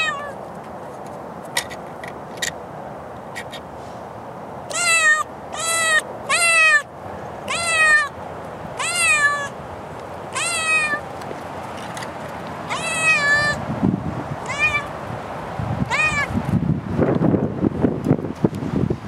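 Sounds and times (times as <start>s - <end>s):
cat meowing loudly: 0.0s - 0.4s, 4.7s - 6.9s, 7.5s - 8.2s, 8.8s - 9.6s, 10.3s - 11.0s, 12.7s - 13.6s, 14.4s - 15.0s, 15.8s - 16.4s.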